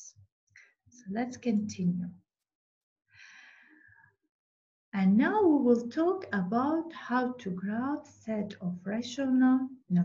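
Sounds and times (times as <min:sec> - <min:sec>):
person breathing: 0:03.1 - 0:04.1.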